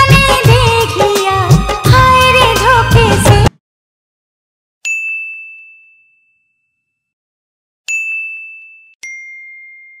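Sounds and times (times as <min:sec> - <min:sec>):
bell ding sound effect: 0:04.9 - 0:07.1, 0:07.9 - 0:10.0.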